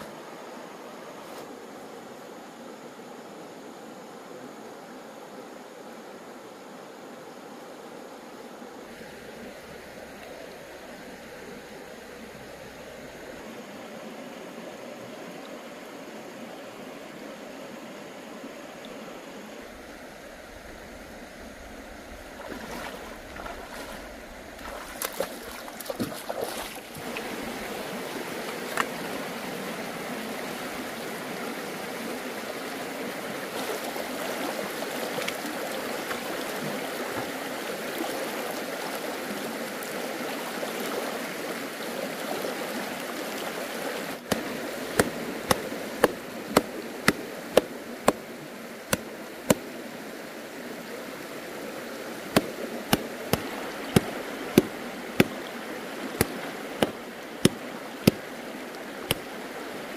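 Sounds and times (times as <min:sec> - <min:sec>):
stream water over rocks: 0:00.0 - 0:59.9
knife chopping on hard surface: 0:52.4 - 0:55.4.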